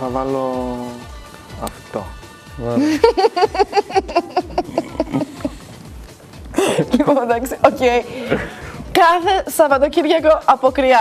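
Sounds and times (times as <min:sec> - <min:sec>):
background music with low beat: 0:00.0 - 0:11.0
woman laughing: 0:02.8 - 0:05.8, 0:06.6 - 0:08.6.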